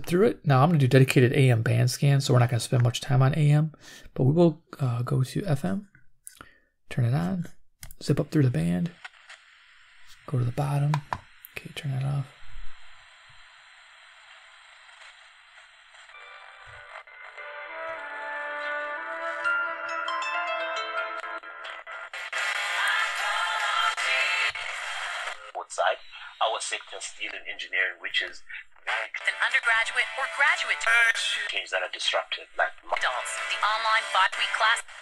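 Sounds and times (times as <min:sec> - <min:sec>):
radio hiss: 0:08.3 - 0:17.2, 0:22.2 - 0:35.0
music from small speaker: 0:16.1 - 0:25.3, 0:28.9 - 0:31.5, 0:33.0 - 0:35.0
announcer's voice: 0:25.6 - 0:34.6.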